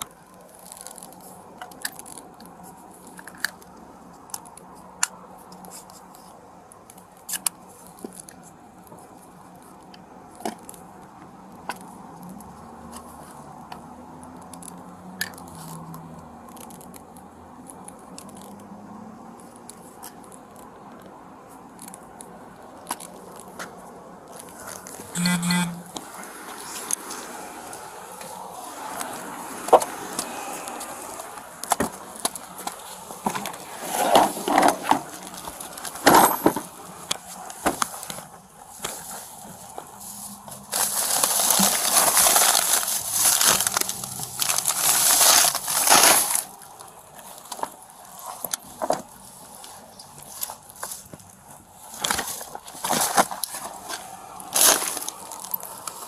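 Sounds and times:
plastic bags crinkling: 0:40.5 - 0:48.9, 0:52.0 - 0:56.0.

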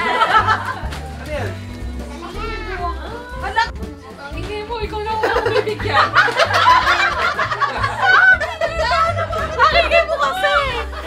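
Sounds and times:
background music with bass line: 0:00.0 - 0:11.0.

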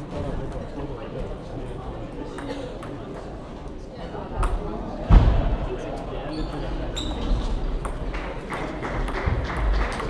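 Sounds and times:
hum of voices in a hall: 0:00.0 - 0:10.0.

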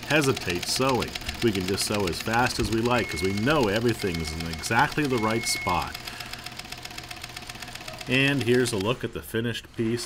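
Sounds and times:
sewing machine stitching: 0:00.0 - 0:10.0.

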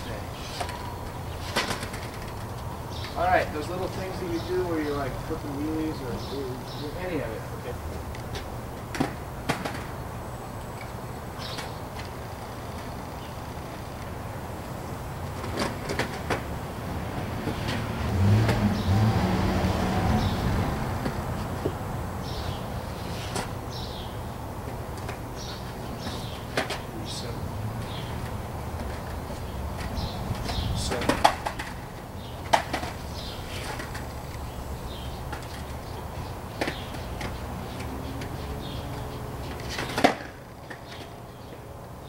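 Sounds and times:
birds chirping: 0:00.0 - 0:42.0
skateboard wheels rumbling: 0:00.0 - 0:42.0
skateboard clacks: 0:07.9 - 0:10.0, 0:15.3 - 0:16.5, 0:27.8 - 0:34.4, 0:35.0 - 0:38.4, 0:39.4 - 0:41.1.

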